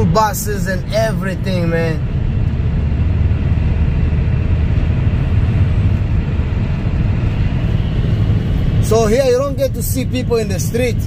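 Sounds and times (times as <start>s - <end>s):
car road noise at highway speed: 0.0s - 11.0s.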